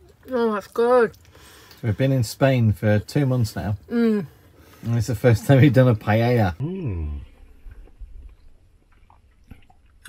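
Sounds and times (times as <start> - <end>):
faint chewing: 7.2 - 10.0
wet mouth clicks and smacks: 7.7 - 10.0.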